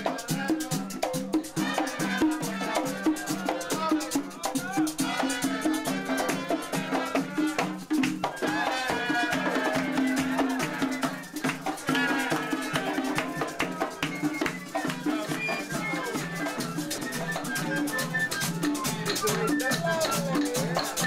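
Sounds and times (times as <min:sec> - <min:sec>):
frame drums and hand percussion: 0:00.0 - 0:21.0.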